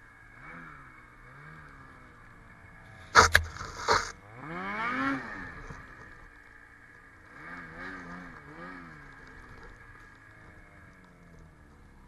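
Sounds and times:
snowmobile engine revving: 0:02.9 - 0:06.0.

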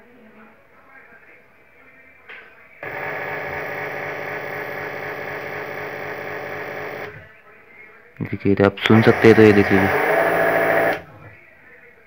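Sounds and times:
electric motor buzzing drone: 0:02.8 - 0:07.2, 0:08.9 - 0:11.0.

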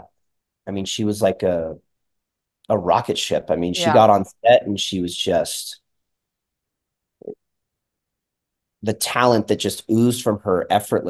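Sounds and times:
man speaking: 0:00.7 - 0:01.8, 0:02.7 - 0:05.8, 0:08.8 - 0:11.0.

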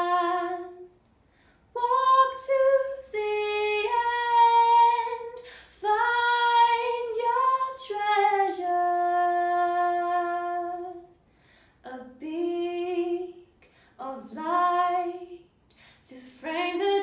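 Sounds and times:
woman singing unaccompanied: 0:00.0 - 0:00.9, 0:01.8 - 0:11.1, 0:11.9 - 0:15.4, 0:16.1 - 0:17.0.

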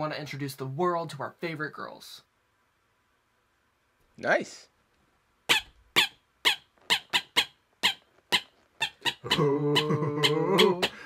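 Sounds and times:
squeaky toy squeaking: 0:05.5 - 0:10.9.

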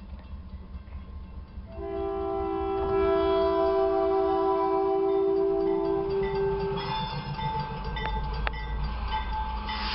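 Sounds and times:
locomotive air horn chord: 0:01.7 - 0:07.3.

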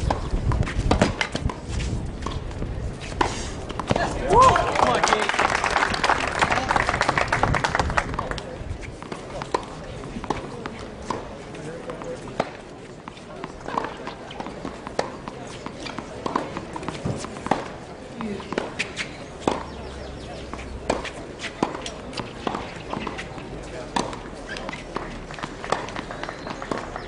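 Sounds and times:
tennis ball bouncing on court: 0:00.0 - 0:05.0, 0:07.4 - 0:27.0
faint spectator chatter: 0:00.1 - 0:27.0.

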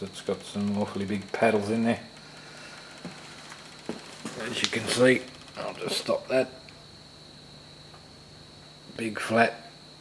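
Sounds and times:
motor humming with high whine: 0:00.0 - 0:10.0.

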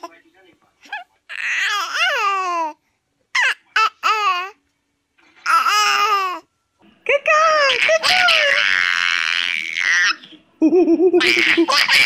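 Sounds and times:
infant cooing: 0:01.3 - 0:02.8.

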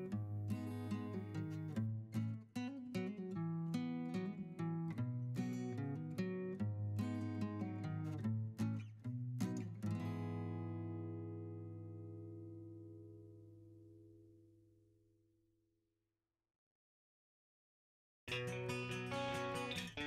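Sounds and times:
acoustic guitar music: 0:00.0 - 0:14.7, 0:18.3 - 0:20.0.

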